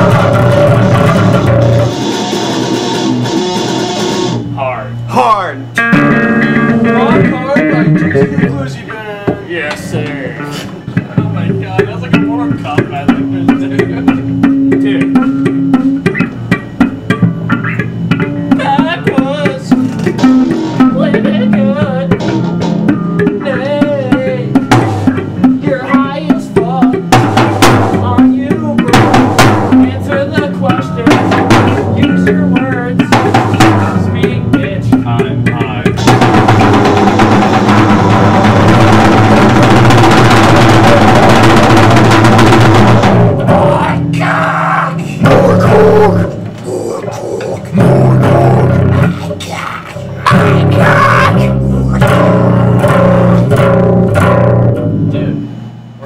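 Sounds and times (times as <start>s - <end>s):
bass guitar: 0.0s - 56.0s
drums: 0.0s - 56.0s
electric guitar melody: 0.0s - 56.0s.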